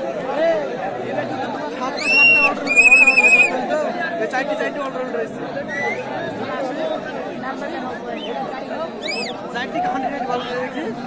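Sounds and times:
crowd chatter: 0.0 - 11.0
referee's whistle blasts: 2.0 - 3.5.

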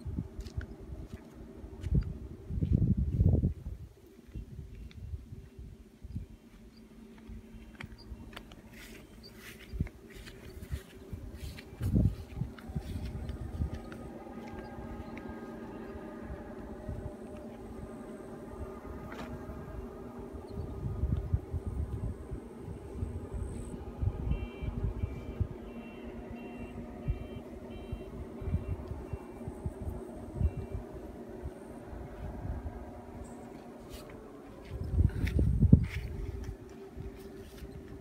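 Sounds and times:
wind on microphone: 0.0 - 6.5, 7.2 - 38.0
distant engine hum: 0.0 - 38.0.

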